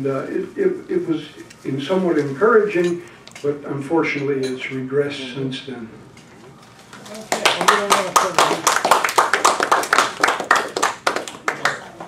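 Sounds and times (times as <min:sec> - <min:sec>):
audience clapping: 0:07.2 - 0:12.0.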